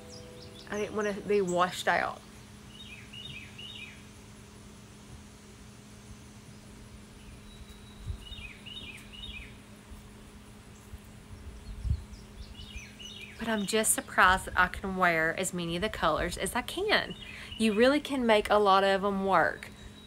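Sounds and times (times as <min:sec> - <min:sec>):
faint steady hum: 0:00.0 - 0:20.0
small bird chirping: 0:02.7 - 0:04.0, 0:06.5 - 0:09.6.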